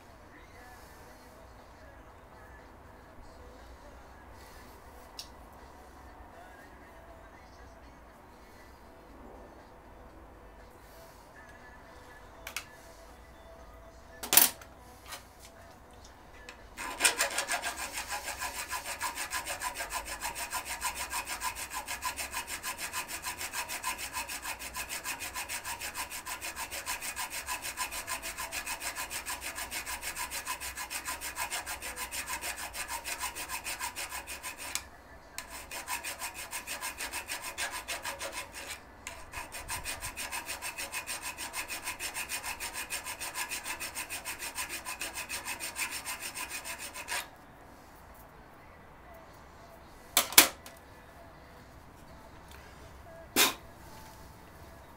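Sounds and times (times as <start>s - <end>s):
hand file rasping on metal: 16.8s - 47.3s.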